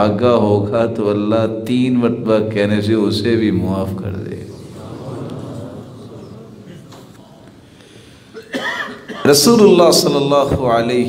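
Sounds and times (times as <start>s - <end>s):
man coughing: 8.3s - 9.5s.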